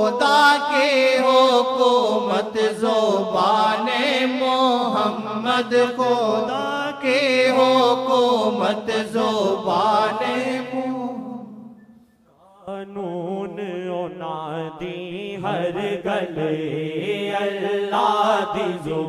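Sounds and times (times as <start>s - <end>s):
devotional chant singing: 0.0s - 19.0s.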